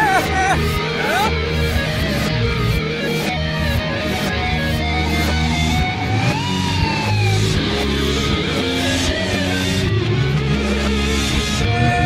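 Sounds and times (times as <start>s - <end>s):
reversed rock music: 0.0s - 12.0s.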